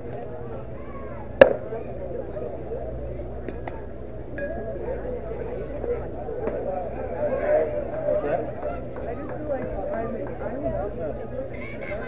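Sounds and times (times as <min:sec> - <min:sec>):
faint background chatter: 0:00.0 - 0:12.0
baseball smacking into mitt: 0:01.4 - 0:01.6.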